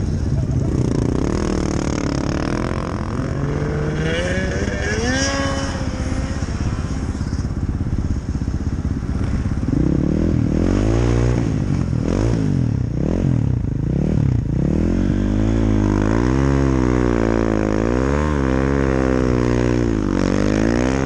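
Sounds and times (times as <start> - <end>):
snowmobile engine revving: 0.0 - 7.6, 9.6 - 13.2, 14.0 - 21.0.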